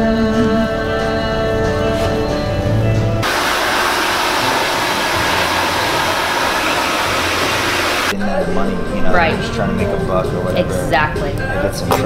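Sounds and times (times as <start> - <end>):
background music: 0.0 - 12.0
hair dryer blowing: 3.2 - 8.2.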